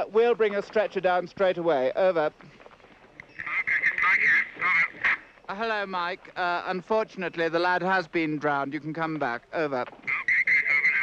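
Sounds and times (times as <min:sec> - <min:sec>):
garbled voice over two-way radio: 0:03.4 - 0:05.2, 0:10.0 - 0:11.0.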